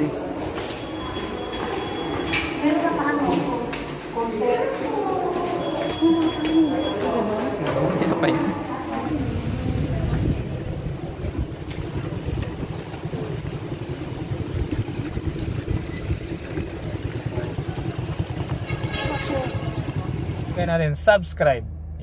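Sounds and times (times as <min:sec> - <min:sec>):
wind buffeting microphone: 0:08.9 - 0:20.5.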